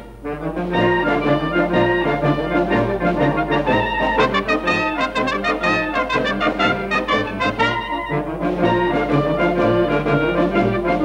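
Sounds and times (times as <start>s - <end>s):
brass band music: 0.0s - 11.0s.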